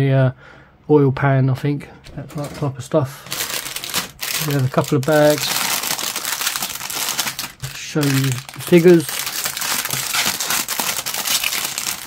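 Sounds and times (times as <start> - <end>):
plastic bag crinkling: 2.2 - 12.0.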